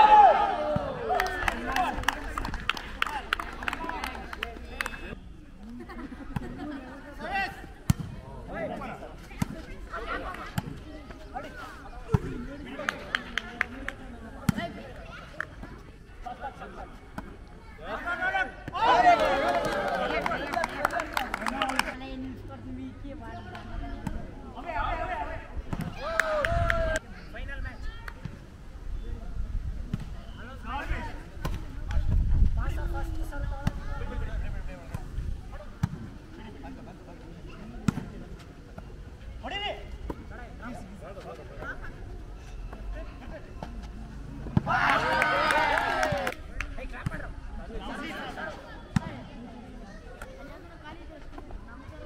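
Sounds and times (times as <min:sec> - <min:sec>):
players shouting: 0:00.0 - 0:02.3, 0:17.8 - 0:21.9, 0:44.6 - 0:46.4.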